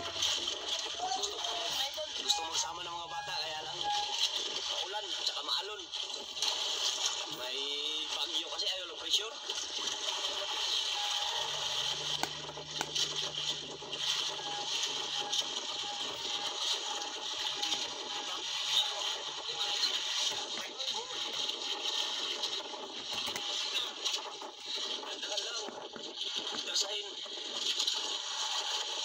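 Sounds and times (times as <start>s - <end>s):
faint voices: 0.0s - 6.0s.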